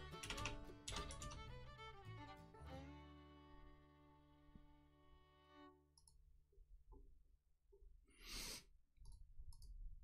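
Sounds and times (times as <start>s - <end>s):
computer keys typing: 0.2s - 1.3s.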